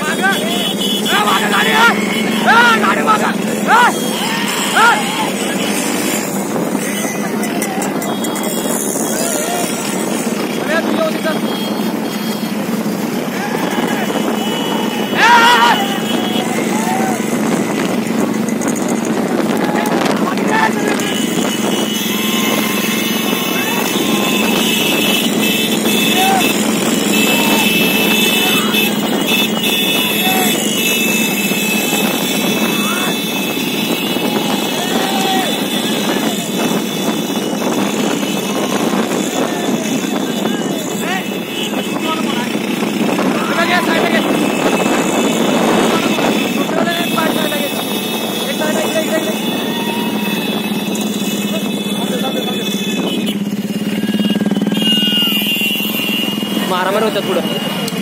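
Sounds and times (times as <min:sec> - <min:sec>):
men shouting: 0:00.0 - 0:18.2, 0:19.3 - 0:52.9
motorcycle engines running: 0:00.0 - 0:58.0
wind on microphone: 0:05.0 - 0:51.2.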